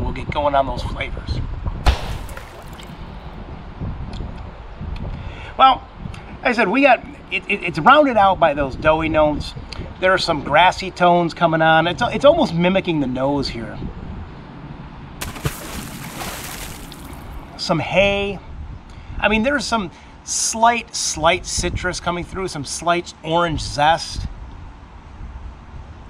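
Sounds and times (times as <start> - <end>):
wind buffeting microphone: 0.0 - 6.4, 8.2 - 10.6.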